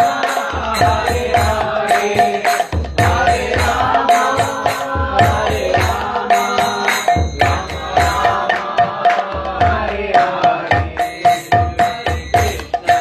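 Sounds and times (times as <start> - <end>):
devotional chanting: 0.0 - 13.0
hand drum beat: 0.0 - 13.0.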